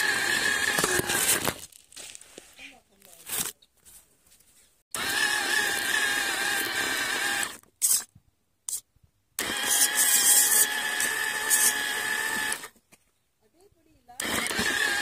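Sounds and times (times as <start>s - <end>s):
small electric motor whining: 0.0s - 1.5s, 4.9s - 8.1s, 9.4s - 12.7s, 14.2s - 15.0s.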